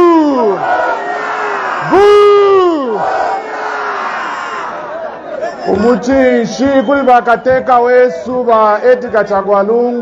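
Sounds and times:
man shouting over loudspeaker: 0.0 - 0.8, 1.8 - 3.2
crowd shouting: 0.0 - 6.6.

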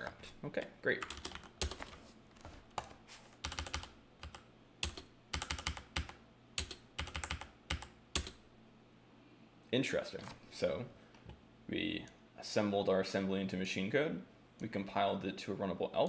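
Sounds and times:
keyboard typing: 1.0 - 2.0, 2.7 - 8.4.

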